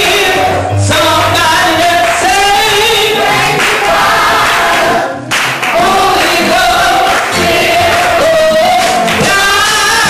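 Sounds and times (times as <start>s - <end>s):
band accompaniment: 0.0s - 10.0s
woman singing through microphone: 6.2s - 10.0s.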